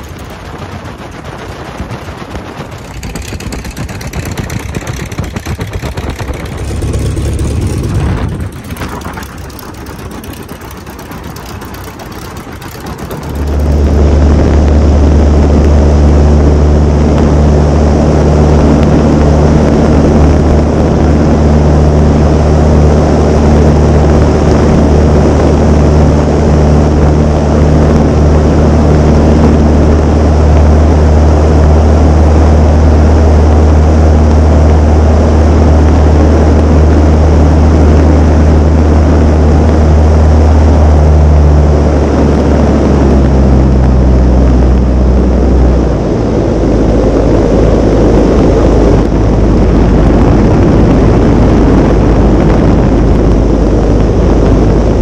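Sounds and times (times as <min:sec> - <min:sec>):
propeller plane engine droning: 0:00.0 - 0:55.0.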